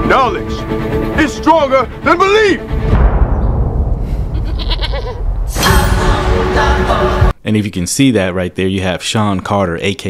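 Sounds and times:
deep low rumbling boom: 0:02.7 - 0:06.8
short animal bleat: 0:04.4 - 0:05.2.

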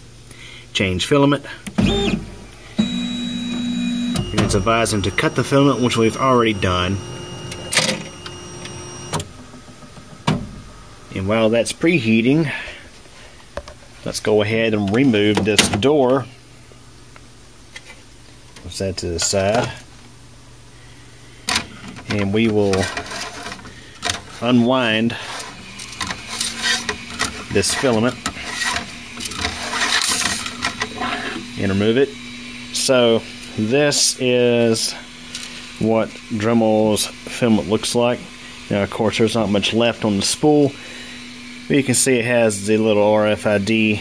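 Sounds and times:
high whining tones: 0:01.8 - 0:09.5
printer humming: 0:01.8 - 0:10.0.

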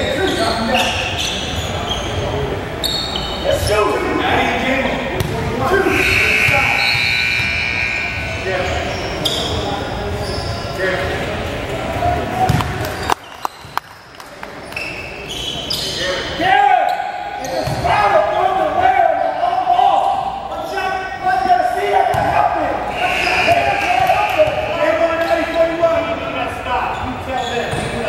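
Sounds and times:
voices: 0:00.0 - 0:13.6, 0:14.4 - 0:28.0.

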